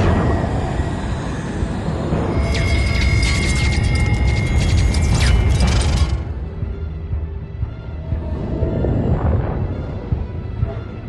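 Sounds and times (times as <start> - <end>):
background music: 0.0 - 11.0
deep rumble: 0.0 - 11.0.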